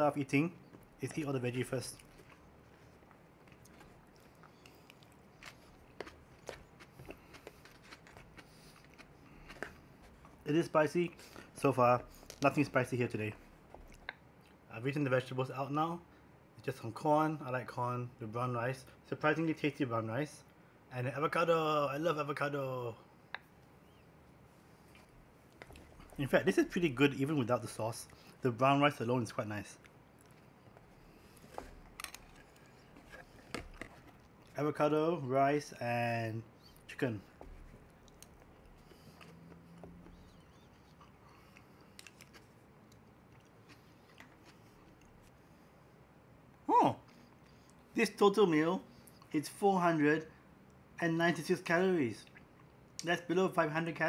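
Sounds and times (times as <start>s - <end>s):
chewing: 1.9s - 10.4s, 36.7s - 45.3s.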